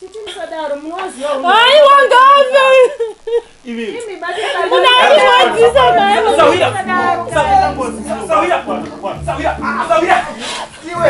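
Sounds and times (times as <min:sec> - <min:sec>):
people talking and shouting: 0:00.0 - 0:11.0.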